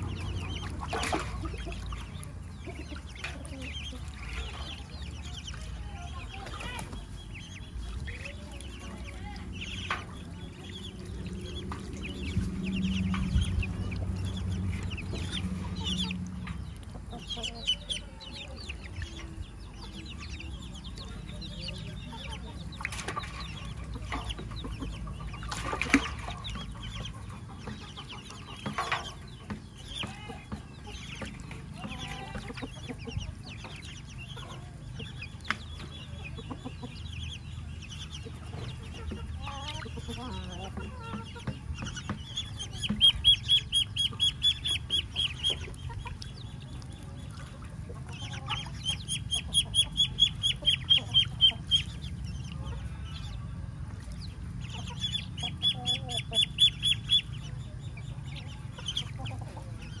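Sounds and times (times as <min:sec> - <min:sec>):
ducklings peeping: 0:00.0 - 1:00.0
low steady hum: 0:00.0 - 1:00.0.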